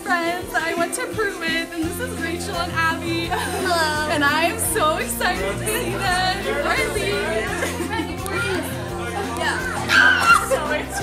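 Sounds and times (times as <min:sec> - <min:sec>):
background music: 0:00.0 - 0:11.0
people talking over one another: 0:00.0 - 0:11.0
children's voices: 0:03.6 - 0:11.0.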